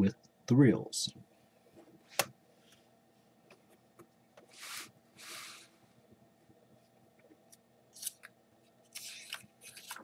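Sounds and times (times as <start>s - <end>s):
paper rustling: 8.9s - 10.0s.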